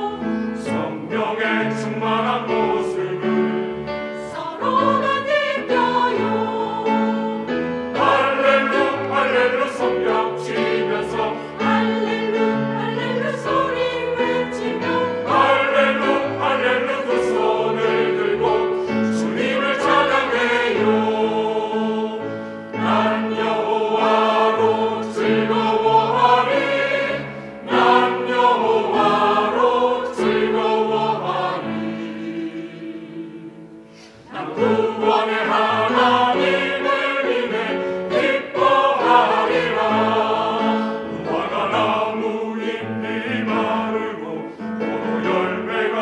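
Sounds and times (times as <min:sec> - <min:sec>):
choir singing in harmony: 0:00.0 - 0:46.0.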